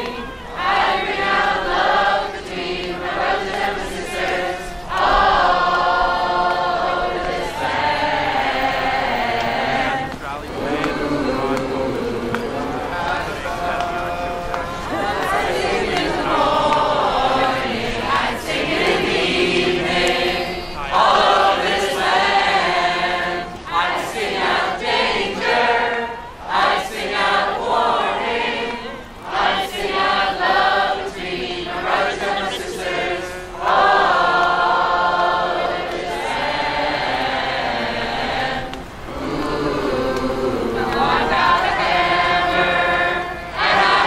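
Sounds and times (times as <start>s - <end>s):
crowd singing unaccompanied: 0.0s - 44.0s.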